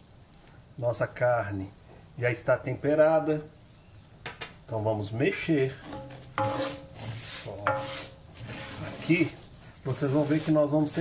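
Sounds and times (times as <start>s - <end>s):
spoon scraping rice in pan: 5.8s - 11.0s.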